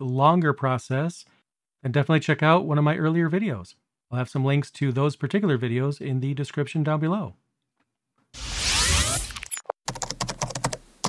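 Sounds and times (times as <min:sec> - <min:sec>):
short rushing noise: 0:08.4 - 0:09.6
rapid typing on a keyboard: 0:09.9 - 0:10.9.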